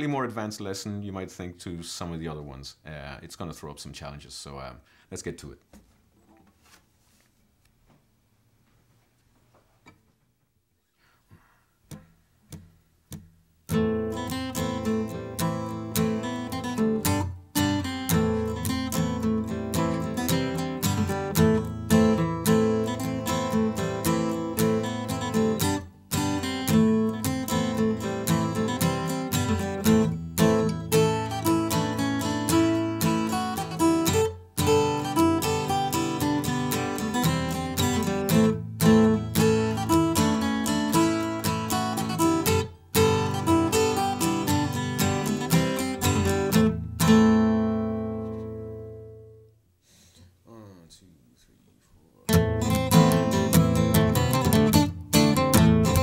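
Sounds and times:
acoustic guitar strumming: 11.9s - 49.5s, 52.3s - 56.0s.

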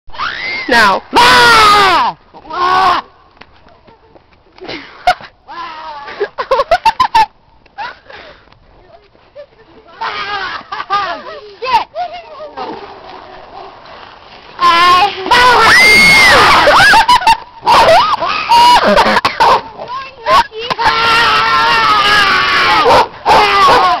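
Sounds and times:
young person yelling: 0.6s - 3.1s, 14.6s - 24.0s.

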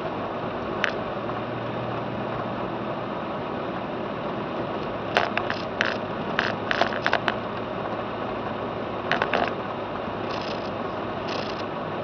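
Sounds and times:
car engine and road noise: 0.0s - 12.0s.

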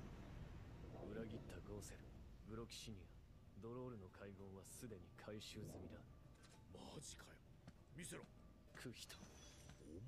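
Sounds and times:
faint dialogue: 1.0s - 9.7s.

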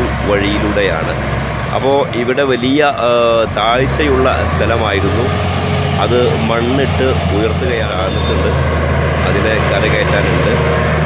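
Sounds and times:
diesel machinery droning: 0.0s - 11.0s
man talking: 0.0s - 11.0s.

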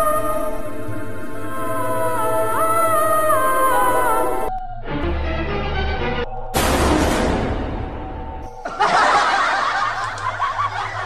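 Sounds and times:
high-pitched voices laughing: 8.6s - 11.0s.

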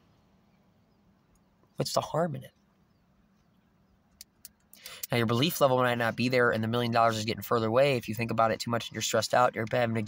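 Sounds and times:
faint low hum: 0.0s - 10.0s
person breathing in: 4.8s - 5.1s.

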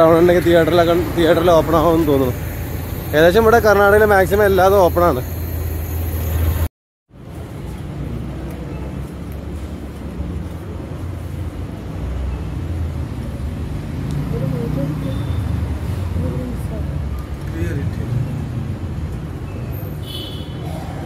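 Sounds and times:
low traffic hum: 0.0s - 21.0s.

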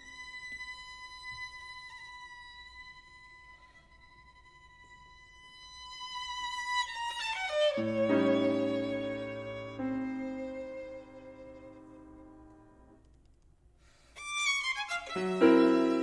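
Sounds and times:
piano low notes: 7.6s - 13.0s.

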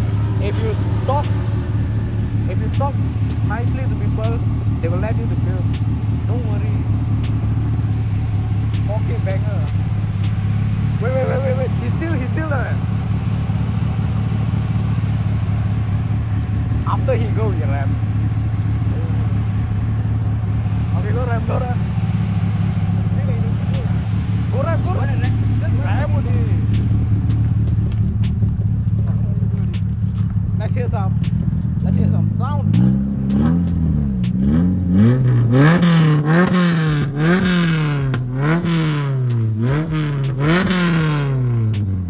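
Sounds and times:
indistinct voices talking: 0.0s - 41.8s
car engine idling: 0.0s - 42.0s.

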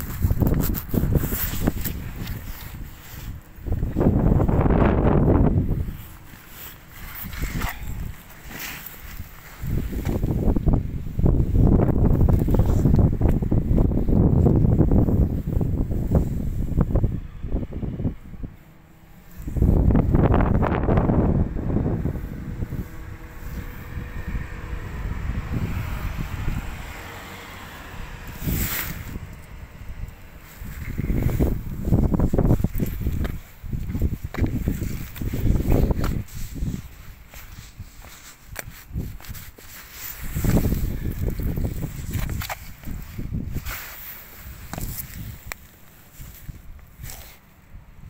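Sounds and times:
brief rustle: 0.0s - 3.4s, 5.9s - 10.2s, 28.3s - 29.2s, 30.5s - 47.4s
wind buffeting microphone: 0.0s - 48.0s.

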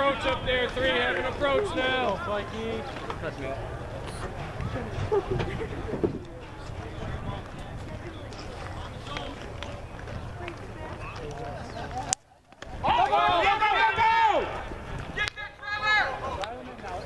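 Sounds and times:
outdoor murmur: 0.0s - 17.0s
people shouting: 12.8s - 16.4s.

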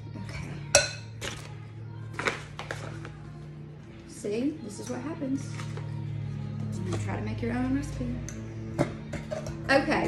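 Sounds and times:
spoon clinking against glass bowl: 0.7s - 1.2s.

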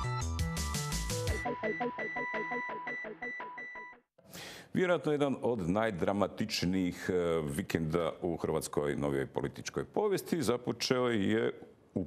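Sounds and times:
electronic title jingle: 1.3s - 4.0s
man speaking: 4.7s - 12.0s.

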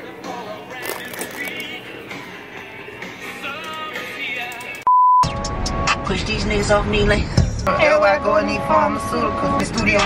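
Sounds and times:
background music: 0.0s - 10.0s
loud single-pitch beep: 4.9s - 5.3s.

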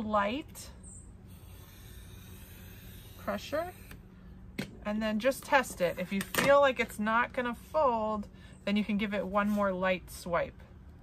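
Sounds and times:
knife blade scratching along ruler: 1.3s - 4.0s.

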